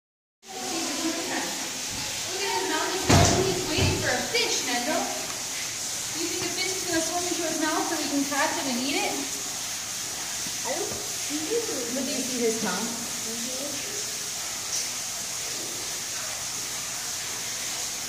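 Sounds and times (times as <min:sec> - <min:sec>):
people talking: 0:00.5 - 0:05.3, 0:06.2 - 0:09.3, 0:10.6 - 0:14.1.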